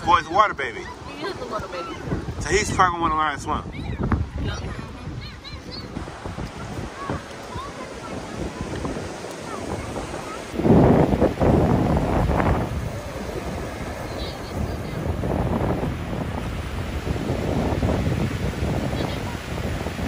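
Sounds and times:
ocean surf breaking: 0.0 - 20.0
wind buffeting microphone: 0.0 - 20.0.

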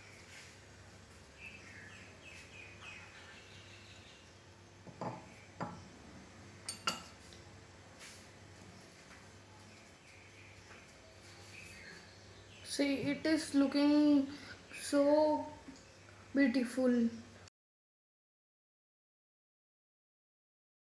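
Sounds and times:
faint steady hum: 0.0 - 17.5.

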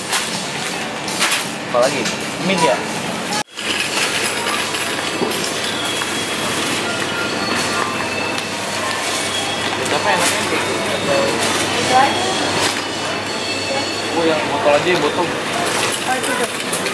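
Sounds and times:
shopping trolley rolling: 0.0 - 16.9.

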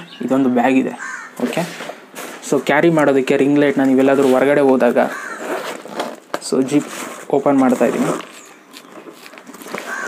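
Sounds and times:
man talking: 0.0 - 1.8, 2.4 - 5.2, 6.4 - 8.2.

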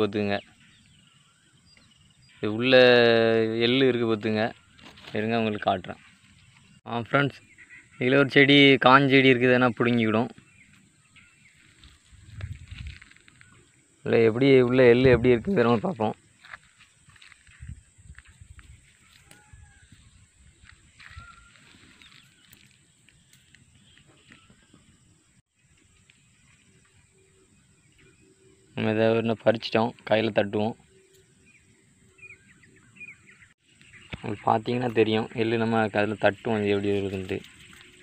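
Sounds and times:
man speaking: 0.0 - 0.5, 2.4 - 6.0, 6.9 - 7.4, 8.0 - 10.3, 14.0 - 16.2, 28.8 - 30.8, 34.2 - 37.5
faint bird chirping: 0.0 - 38.0.

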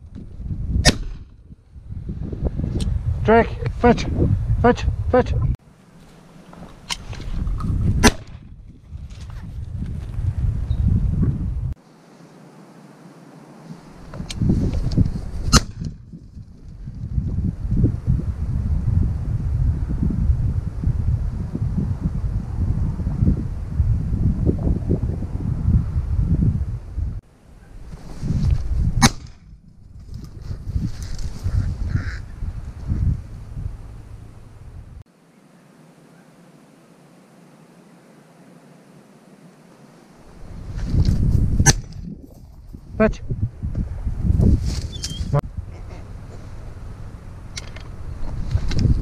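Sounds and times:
wind buffeting microphone: 0.0 - 5.6, 6.8 - 11.8, 13.8 - 35.0, 40.2 - 49.0
sharp cracks: 0.8 - 1.4, 8.0 - 8.5, 29.0 - 29.5.

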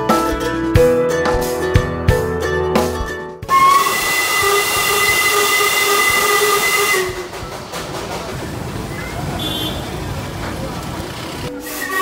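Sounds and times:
background music: 0.0 - 7.8
steam locomotive whistle: 3.5 - 7.6, 9.4 - 9.9, 11.5 - 12.0
hiss of steam: 3.6 - 8.5, 11.5 - 12.0.

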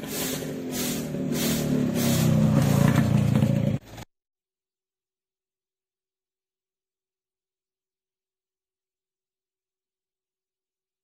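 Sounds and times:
broom scraping pavement: 0.0 - 4.0
vehicle engine passing: 0.0 - 4.0.

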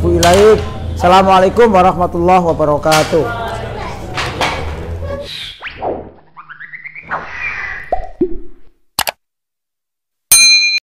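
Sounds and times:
bright ding: 10.3 - 10.8.

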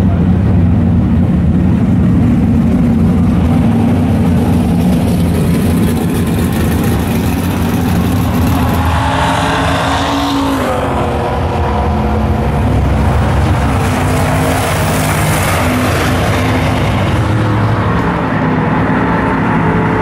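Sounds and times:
engine revving: 0.0 - 20.0
vehicle engines running loudly: 0.0 - 20.0.

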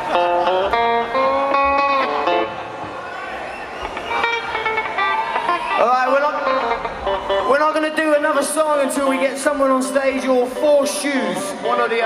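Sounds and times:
electric guitar with pitch bends: 0.0 - 2.8, 3.8 - 7.5.

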